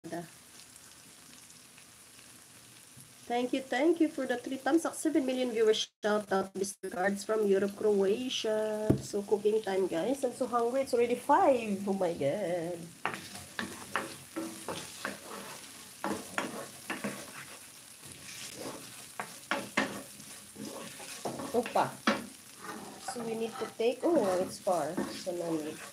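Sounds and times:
potatoes sizzling in oil: 0:00.0 - 0:25.9
oil crackling: 0:12.8 - 0:25.9
spatula scraping a pan: 0:13.0 - 0:25.9.

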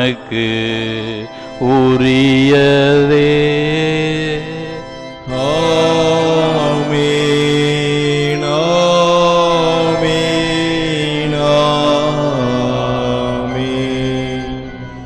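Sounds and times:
liturgical chant singing: 0:00.0 - 0:15.0.

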